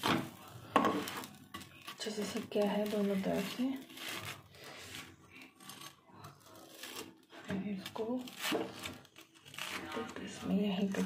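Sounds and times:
metal spatula scraping bread: 0:00.0 - 0:11.0.

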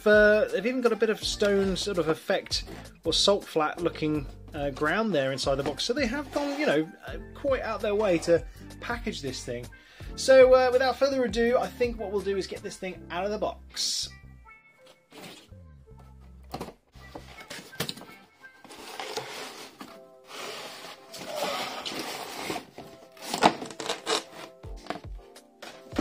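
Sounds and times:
background music: 0:00.0 - 0:26.0
cardboard packaging rustling: 0:17.1 - 0:26.0.

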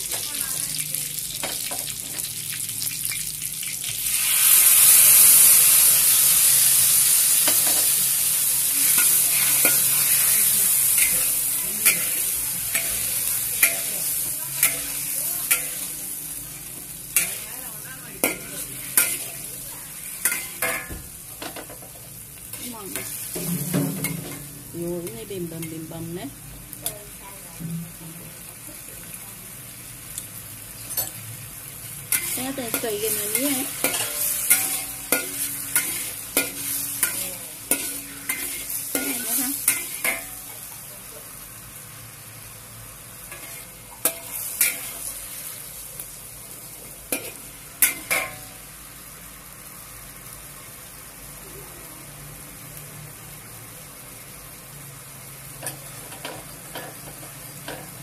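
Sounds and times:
sauce sizzling: 0:00.0 - 0:58.0
spatula scraping in a wok: 0:04.0 - 0:26.0, 0:30.8 - 0:41.0, 0:43.2 - 0:48.7.

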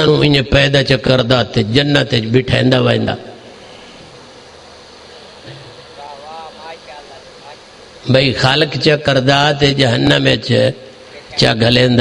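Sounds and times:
man speaking: 0:00.0 - 0:03.4, 0:06.0 - 0:12.0
steady background hiss: 0:00.0 - 0:12.0.

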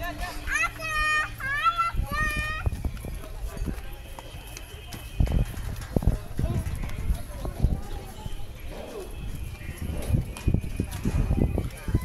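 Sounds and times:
crowd chattering: 0:00.0 - 0:12.0
footsteps on stone: 0:02.2 - 0:12.0.

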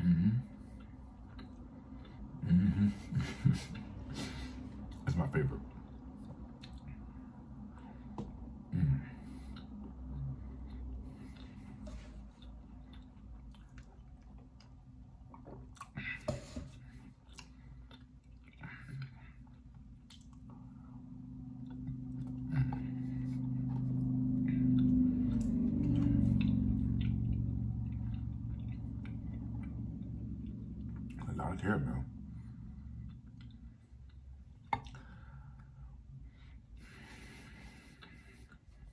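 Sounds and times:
person chewing soft cookie: 0:00.0 - 0:38.9
steady low hum: 0:00.0 - 0:38.9
wet mouth clicks and lip smacks: 0:20.0 - 0:20.5.

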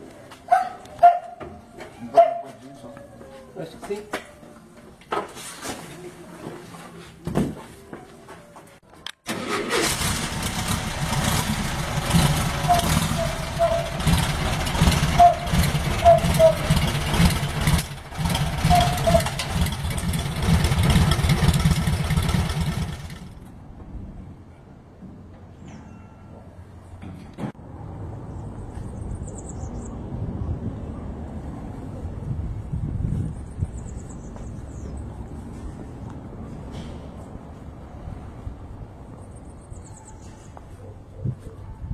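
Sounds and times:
engine throttle blips: 0:09.3 - 0:23.5
car engine starting and running: 0:09.3 - 0:23.6
faint steady engine: 0:09.3 - 0:23.9.

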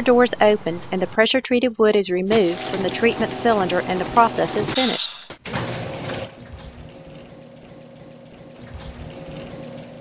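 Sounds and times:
steady mechanical hum: 0:02.2 - 0:05.1, 0:06.0 - 0:10.0.

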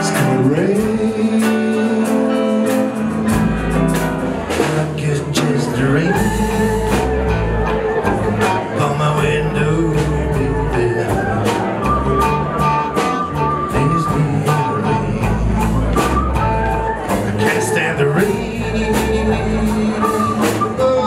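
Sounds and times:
bass guitar: 0:00.0 - 0:21.0
drums keeping steady beat: 0:00.0 - 0:21.0
electric guitars: 0:00.0 - 0:21.0
keyboard: 0:00.0 - 0:21.0.

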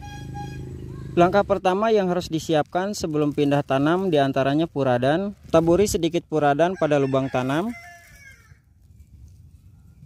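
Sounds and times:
distant chicken clucking: 0:06.5 - 0:08.7.

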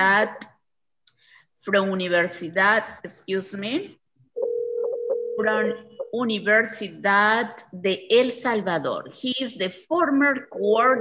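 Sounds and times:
person speaking: 0:05.4 - 0:09.2.

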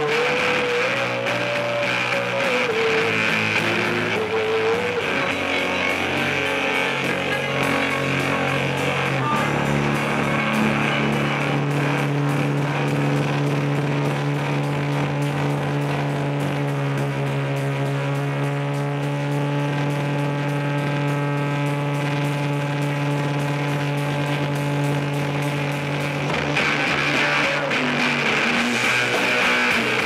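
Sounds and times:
rock band sustained chord: 0:00.0 - 0:30.0.

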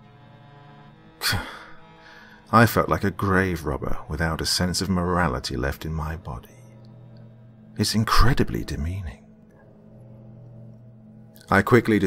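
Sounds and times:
background music drone: 0:00.0 - 0:12.0
man sighing: 0:01.2 - 0:02.4.

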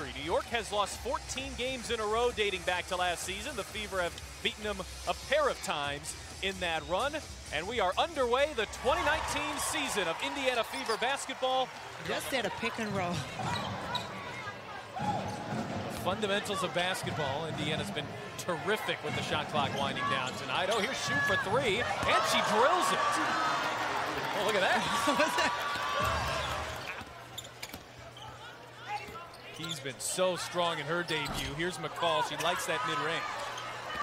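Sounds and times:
crowd murmur: 0:11.7 - 0:28.8.

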